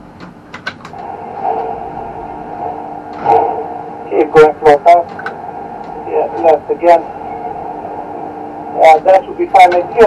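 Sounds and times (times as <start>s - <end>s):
steady crane cab hum: 0.0s - 10.0s
voice over radio: 3.2s - 5.2s, 6.0s - 7.1s, 8.7s - 10.0s.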